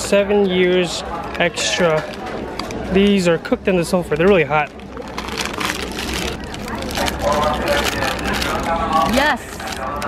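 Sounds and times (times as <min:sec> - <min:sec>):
paper bag crinkling: 0:04.2 - 0:10.0.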